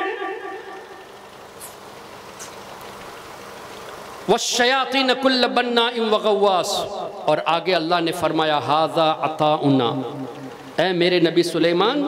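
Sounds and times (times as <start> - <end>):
low background noise: 0.0 - 12.0
faint short high hisses: 1.6 - 1.8.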